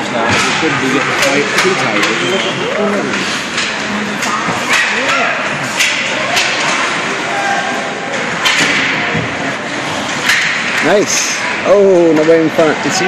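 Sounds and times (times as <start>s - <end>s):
sticks and puck clacking: 0.3s - 13.0s
voices shouting: 4.6s - 8.4s.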